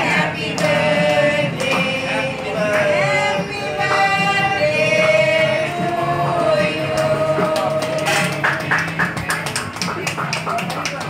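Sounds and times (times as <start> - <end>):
group clapping in rhythm: 0.0 - 11.0.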